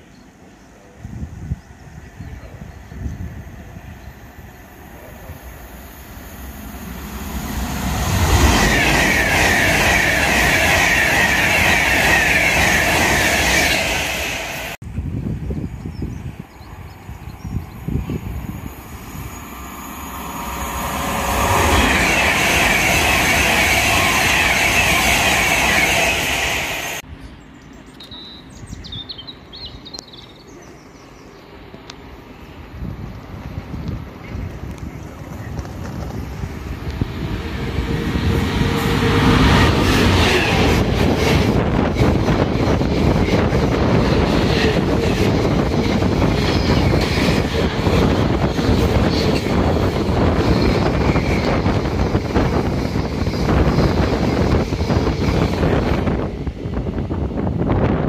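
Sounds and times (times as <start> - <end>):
trains passing at speed: 0.0 - 58.0.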